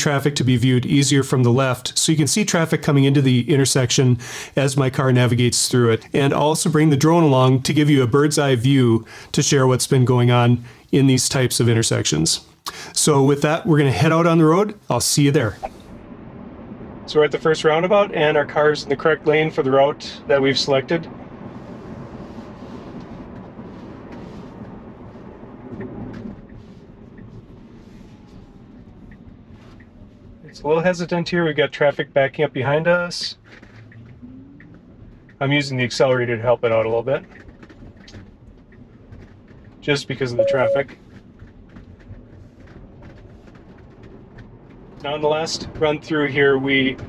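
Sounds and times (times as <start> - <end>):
road and tyre noise: 0.0 - 47.0
faint whine falling in pitch: 40.4 - 40.9.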